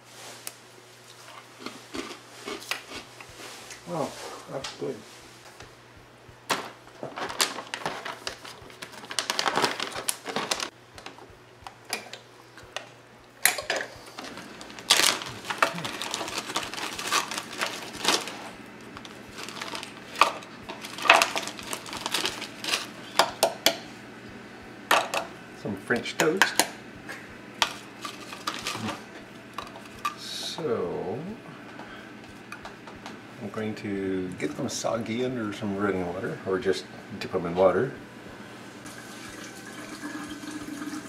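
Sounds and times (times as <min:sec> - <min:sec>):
plastic bag crinkling: 0:06.6 - 0:10.7, 0:14.2 - 0:23.0, 0:27.7 - 0:29.0.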